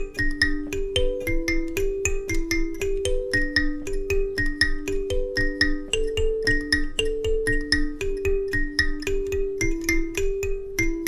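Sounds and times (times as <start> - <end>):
plucked karimba notes: 0.0 - 11.0.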